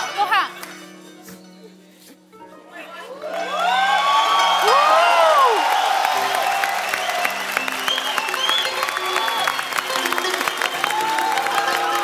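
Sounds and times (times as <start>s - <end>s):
background music: 0.0s - 12.0s
audience cheering and whooping: 3.1s - 12.0s
audience clapping: 3.1s - 12.0s.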